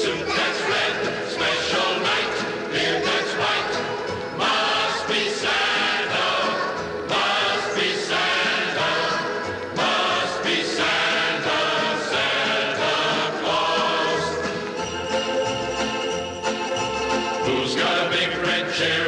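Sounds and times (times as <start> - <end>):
choir singing with accompaniment: 0.0 - 19.0.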